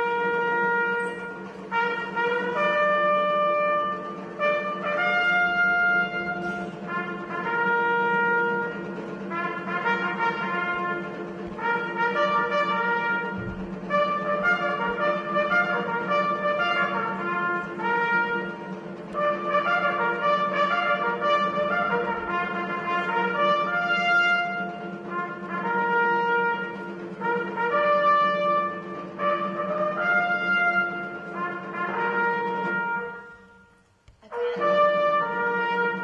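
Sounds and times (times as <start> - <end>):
solo trumpet slow melody: 0.0 - 36.0
steady low hum: 0.0 - 36.0.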